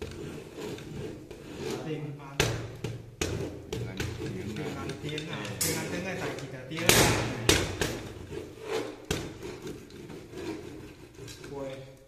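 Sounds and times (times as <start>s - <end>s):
wood rubbing on table: 0.0s - 11.8s
sharp wooden knocks: 6.7s - 8.2s.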